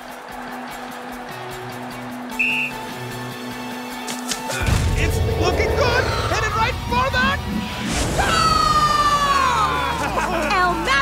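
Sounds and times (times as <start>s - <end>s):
long falling pitched tone: 5.0s - 7.5s.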